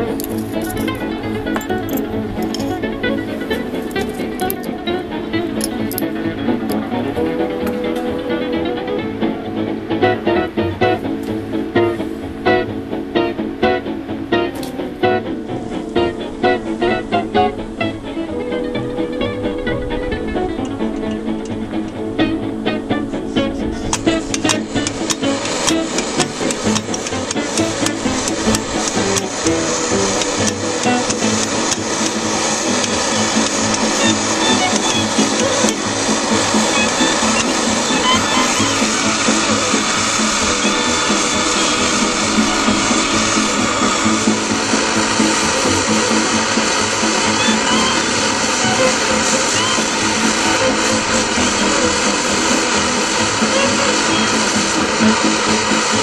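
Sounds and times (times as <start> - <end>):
background music: 0.0 - 56.0
pressure stove burner roaring: 0.0 - 56.0.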